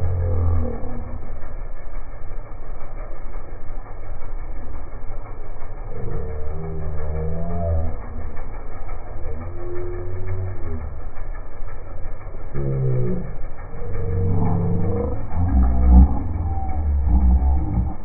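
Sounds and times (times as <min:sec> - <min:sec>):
low rumble: 0:00.0 - 0:18.0.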